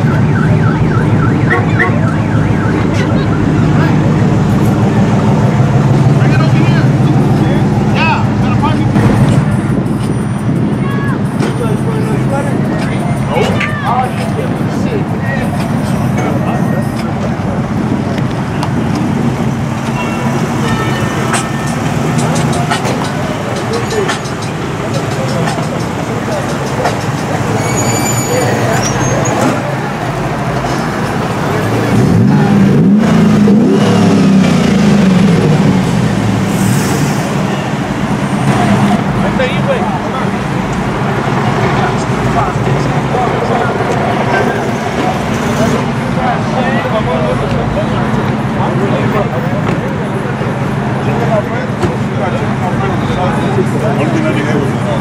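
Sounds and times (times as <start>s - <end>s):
car engines running: 0.0s - 55.0s
people talking: 0.0s - 55.0s
engine revving: 17.2s - 55.0s.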